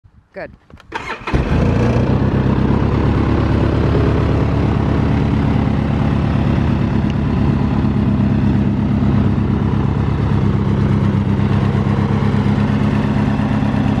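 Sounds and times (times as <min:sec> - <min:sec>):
engine idling: 0:01.0 - 0:14.0.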